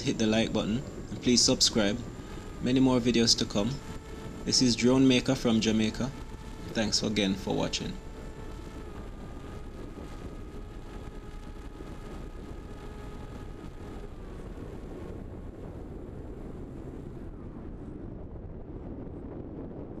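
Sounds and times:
model plane motor whine: 0.0 - 19.4
wind over microphone: 0.0 - 20.0.

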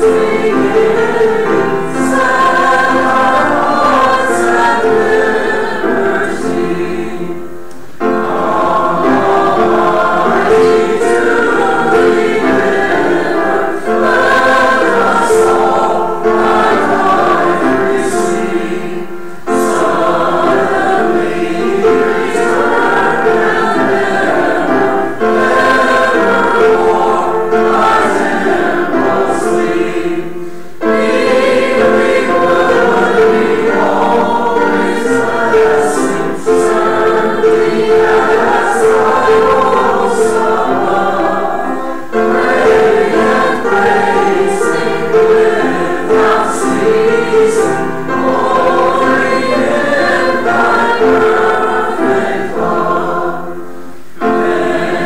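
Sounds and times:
congregation and choir singing a hymn: 0.0 - 55.0.

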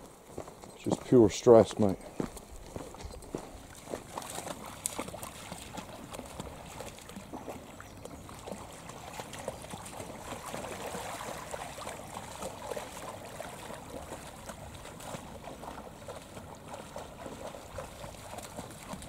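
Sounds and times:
dog wading through splashing water: 2.4 - 19.0.

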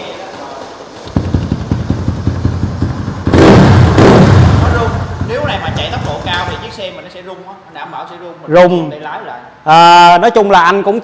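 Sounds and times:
motorcycle engine revving: 1.1 - 6.9.

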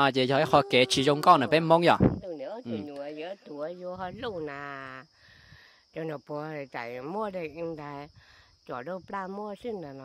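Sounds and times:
person talking: 0.0 - 5.0.

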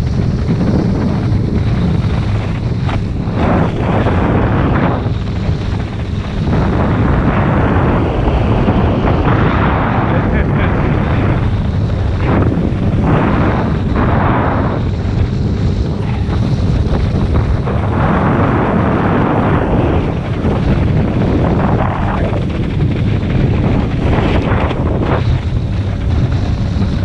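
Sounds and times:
wind blasting microphone: 0.0 - 27.0.

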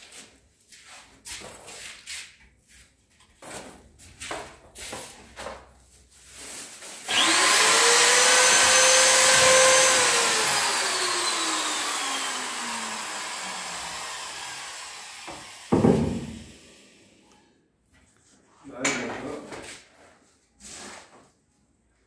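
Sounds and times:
power tool motor whining: 7.1 - 17.0
loud knock on wood: 15.3 - 16.5.

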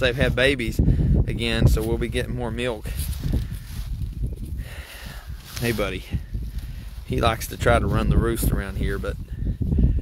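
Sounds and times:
goats rustling and shuffling: 3.0 - 4.6, 5.3 - 9.2.

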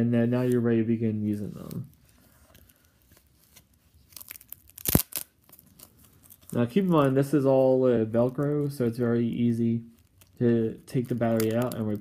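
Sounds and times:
plastic crackling and rasping: 1.2 - 12.0
plastic tab ripping: 3.4 - 7.1, 9.9 - 12.0.

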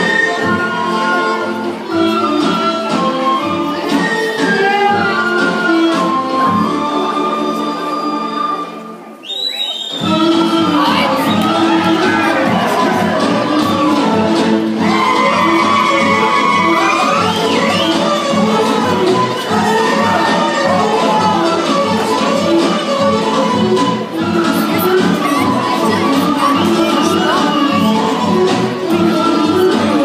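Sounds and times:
folk dance music: 0.0 - 30.0
dancers shouting together: 10.6 - 14.0, 14.7 - 18.6, 19.4 - 22.3.

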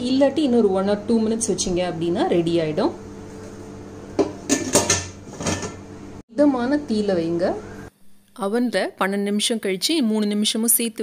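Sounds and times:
metal lid clanks and scrapes: 4.2 - 5.8.

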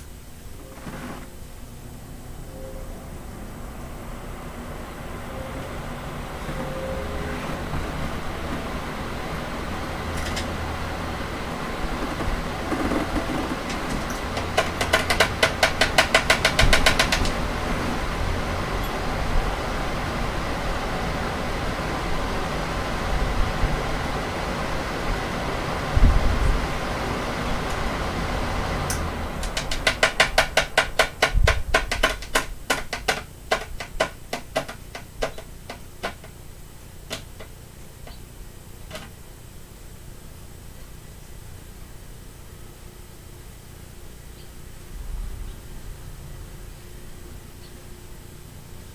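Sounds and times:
fans blowing air: 0.0 - 48.9
rapid ticking: 11.2 - 17.7, 28.9 - 38.2.

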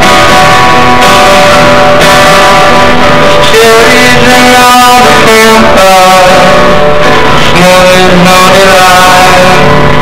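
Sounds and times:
man singing: 0.0 - 9.8
acoustic guitar: 0.0 - 10.0.

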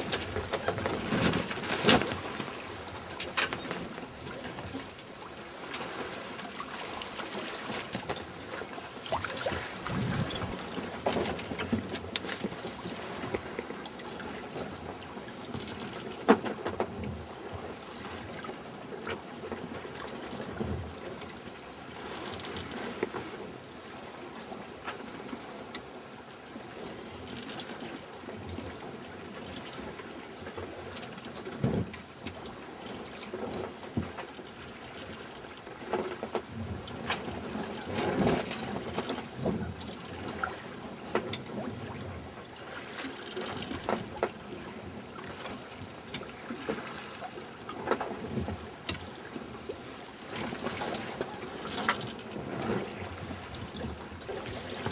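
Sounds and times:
water washing along boat hull: 0.0 - 54.9.

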